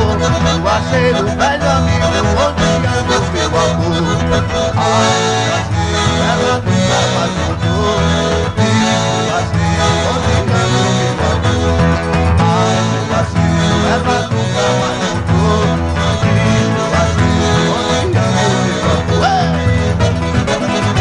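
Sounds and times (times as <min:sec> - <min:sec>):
accordion melody: 0:00.0 - 0:21.0
acoustic guitar strumming: 0:00.0 - 0:21.0
steady bass: 0:00.0 - 0:21.0.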